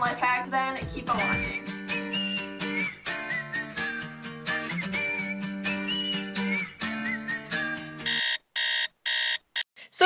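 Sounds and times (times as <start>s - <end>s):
phone alarm beeping: 8.1s - 9.7s.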